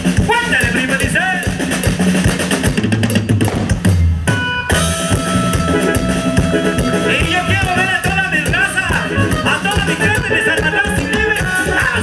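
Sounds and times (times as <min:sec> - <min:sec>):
drum kit beat: 0:00.0 - 0:12.0
live band music: 0:00.0 - 0:12.0
held notes: 0:04.3 - 0:12.0.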